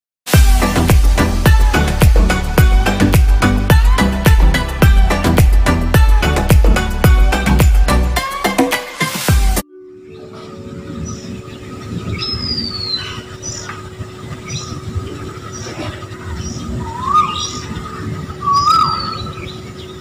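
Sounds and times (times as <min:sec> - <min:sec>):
birds chirping: 0:09.6 - 0:20.0
bird whistles: 0:12.2 - 0:13.7, 0:16.5 - 0:19.6.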